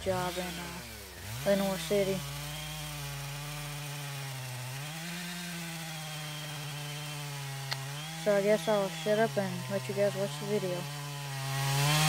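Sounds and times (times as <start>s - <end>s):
chainsaw cutting log: 0.0s - 12.0s.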